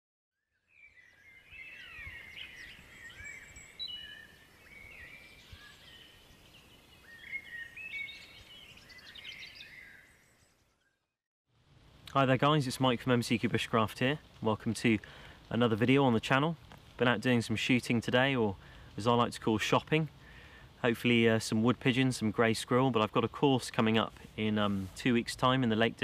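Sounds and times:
songbirds singing and chirping: 0.5 - 11.1.

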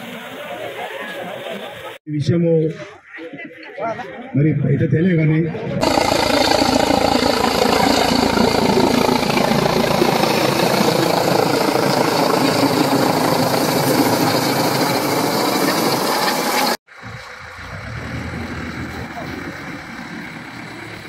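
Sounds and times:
helicopter flying low overhead: 5.7 - 21.0.

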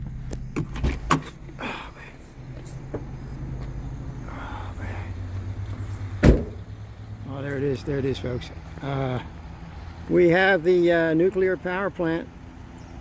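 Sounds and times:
car engine idling: 0.0 - 13.0.

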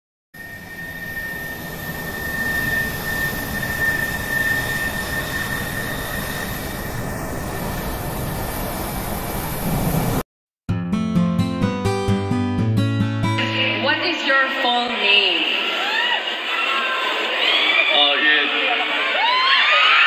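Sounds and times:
jet engines whining: 0.4 - 10.2.

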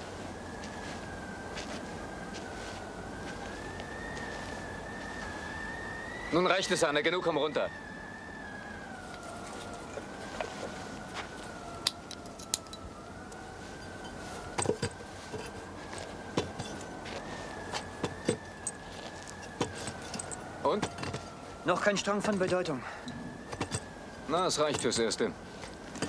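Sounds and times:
telephone line whine: 8.7 - 26.0.

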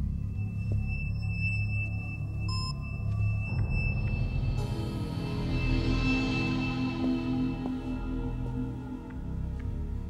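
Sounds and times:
low drone: 3.5 - 10.0.

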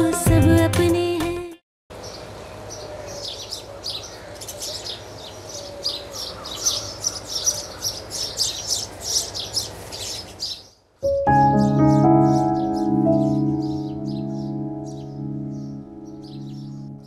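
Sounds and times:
small birds chirping: 2.0 - 10.9, 11.6 - 17.0.

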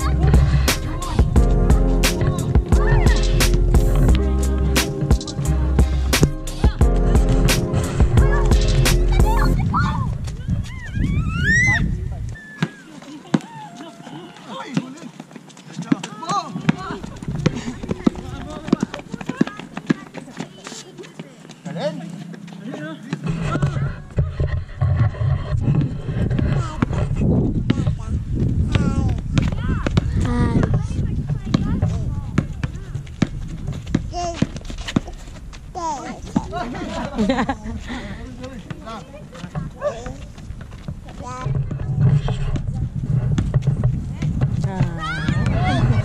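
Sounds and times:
basketball bouncing on asphalt: 14.6 - 21.5, 25.7 - 37.2, 38.4 - 45.7.

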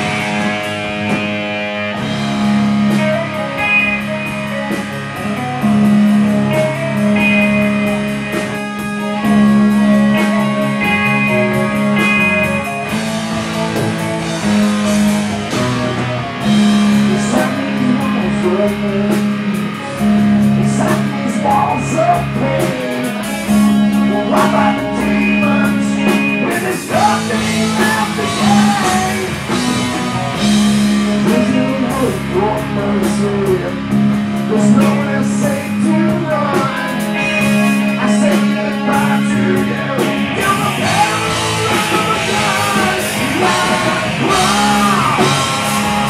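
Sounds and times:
bass guitar low notes: 0.0 - 46.0
drums steady beat: 0.0 - 46.0
electric guitars: 0.0 - 46.0.

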